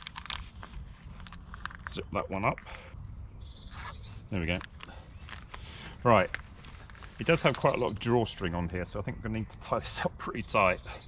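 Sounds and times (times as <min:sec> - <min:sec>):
sachet and fabric crinkling: 0:00.0 - 0:02.0, 0:03.7 - 0:08.0.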